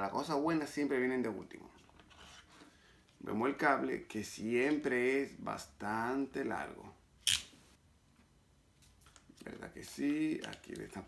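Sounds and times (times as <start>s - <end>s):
faint handling sounds: 1.4s - 3.3s.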